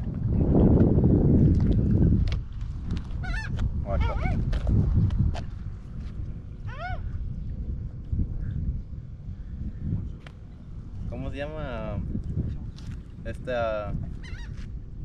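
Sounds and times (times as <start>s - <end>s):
wind rumbling on microphone: 0.0s - 15.0s
bird honking calls: 3.2s - 4.4s, 14.2s - 14.6s.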